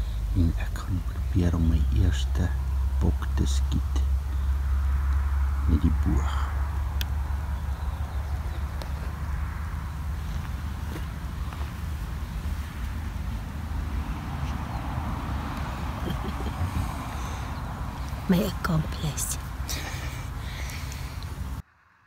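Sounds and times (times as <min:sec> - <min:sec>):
distant highway traffic rumble: 0:00.0 - 0:22.0.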